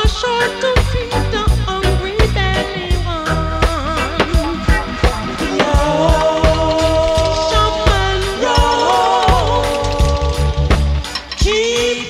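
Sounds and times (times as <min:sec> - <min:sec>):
reggae song with drums and bass: 0:00.0 - 0:12.0.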